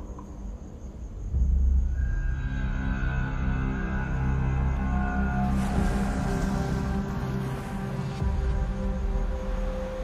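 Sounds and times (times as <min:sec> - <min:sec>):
dramatic tv underscore music: 0:00.0 - 0:10.0.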